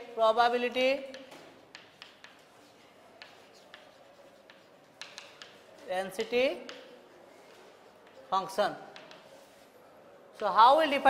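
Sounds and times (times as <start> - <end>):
chalk tapping: 0.6 - 9.8
chalk scratching on chalkboard: 0.9 - 9.8.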